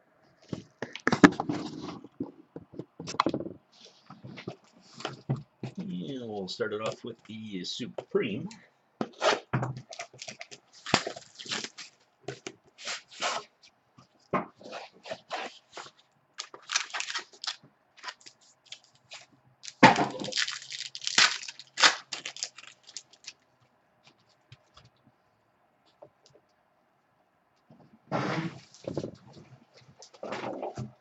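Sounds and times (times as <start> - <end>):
plastic packaging tearing: 9.9 - 12.0, 14.6 - 23.4.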